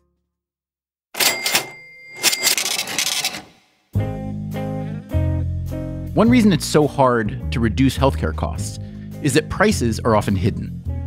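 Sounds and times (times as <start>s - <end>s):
cash register clatter: 1.2s - 3.6s
cash register bell ringing: 1.2s - 3.7s.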